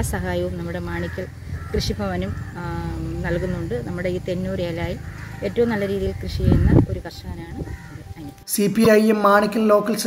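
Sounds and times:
woman speaking: 0.0s - 8.4s.

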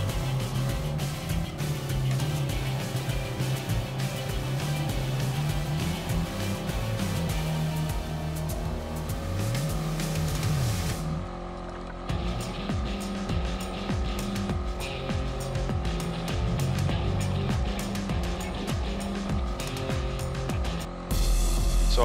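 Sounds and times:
background music: 0.0s - 22.0s
off-road vehicle engine revving: 0.0s - 22.0s.

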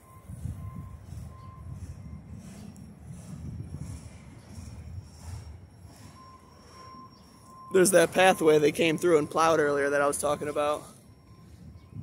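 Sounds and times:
train wheels rumbling on rails: 0.0s - 12.0s.

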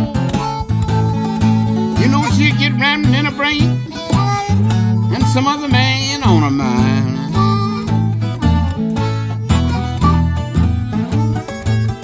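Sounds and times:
person singing: 0.0s - 8.2s
acoustic blues guitar: 0.0s - 12.0s.

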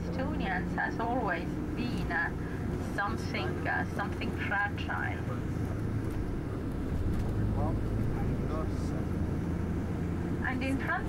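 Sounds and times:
bus engine rumble: 0.0s - 11.0s
road noise: 0.0s - 11.0s.

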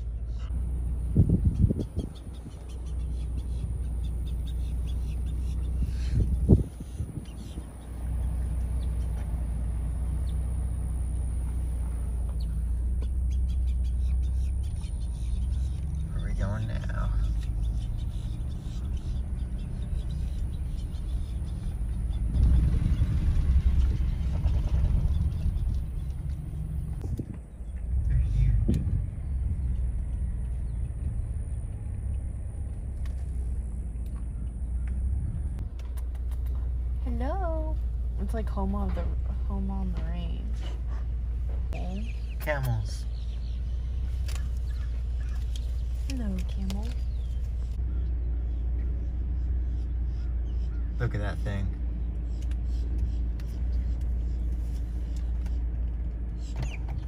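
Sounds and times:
car engine and tyres rumbling on gravel: 0.0s - 57.0s.

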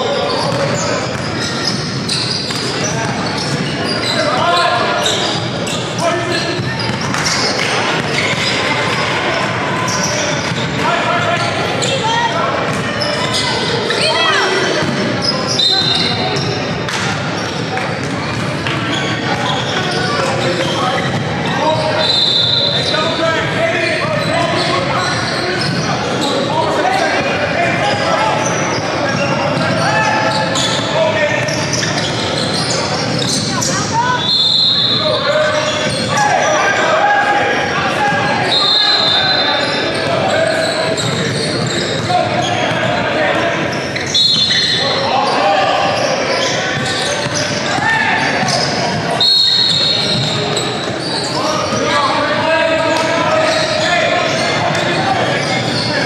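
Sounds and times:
chatter and calls of people: 0.0s - 56.0s
high-pitched shoe squeaks: 0.2s - 7.5s, 15.2s - 16.6s, 43.7s - 45.4s, 46.0s - 52.0s
basketball bouncing on wooden court: 12.7s - 13.0s, 17.4s - 19.7s.

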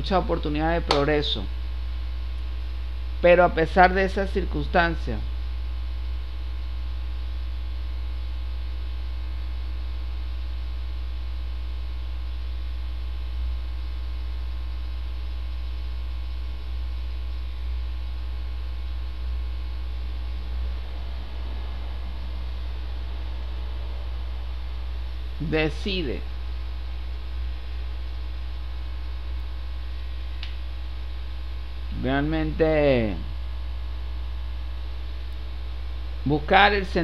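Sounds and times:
constant hiss: 0.0s - 37.0s
electrical mains hum: 0.0s - 37.0s.

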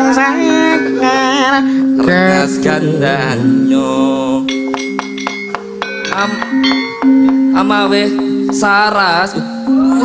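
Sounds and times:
wavering sung voice: 0.0s - 4.9s, 6.0s - 10.0s
gamelan metal keys ringing: 4.5s - 10.0s.

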